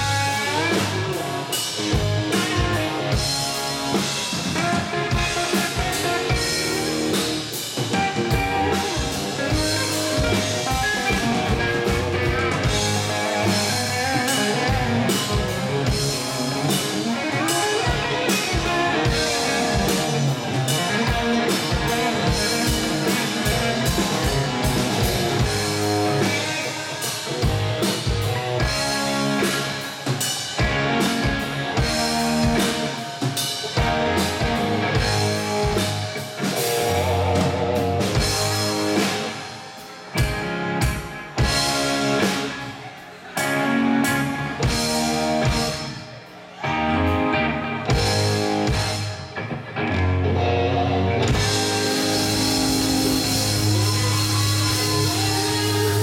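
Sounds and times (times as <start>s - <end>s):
live rock band playing: 0.0s - 56.0s.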